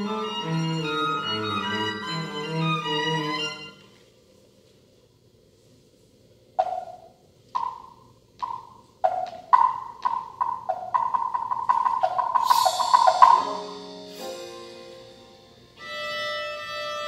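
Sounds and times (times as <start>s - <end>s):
low bowed string notes: 0.0s - 3.9s, 12.4s - 17.0s
wood block percussion strokes: 6.6s - 17.0s
cymbal wash: 11.7s - 17.0s.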